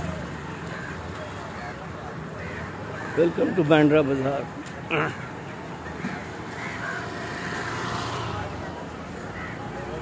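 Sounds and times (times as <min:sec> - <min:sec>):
motor vehicle passing: 0:06.0 - 0:10.0.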